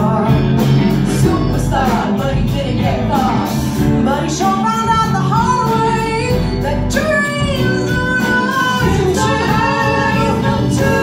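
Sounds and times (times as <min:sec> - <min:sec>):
bass guitar: 0:00.0 - 0:11.0
electric guitar: 0:00.0 - 0:11.0
female lead vocals: 0:00.0 - 0:11.0
piano: 0:00.0 - 0:11.0.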